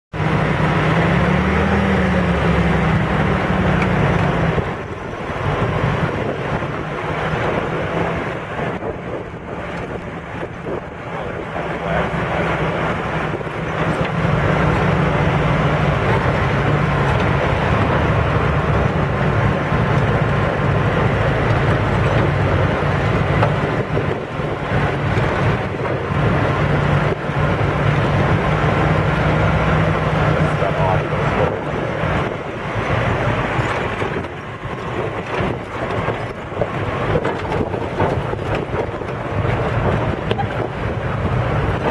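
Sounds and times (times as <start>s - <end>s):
off-road vehicle engine running: 0.1s - 41.9s
rough dirt trail ride noise: 0.2s - 41.9s.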